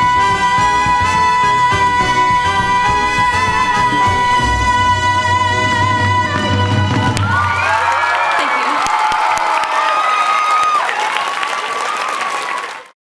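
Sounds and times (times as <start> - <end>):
audience applauding and cheering: 5.4 - 13.0
whoops: 7.2 - 12.8.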